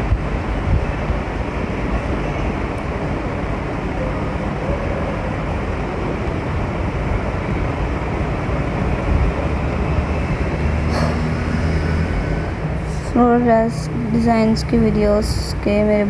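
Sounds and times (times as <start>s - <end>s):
rumbling background noise: 0.0s - 16.0s.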